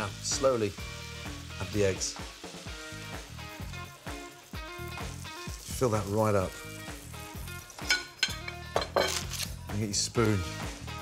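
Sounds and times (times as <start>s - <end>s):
egg sizzling in frying pan: 0.0s - 11.0s.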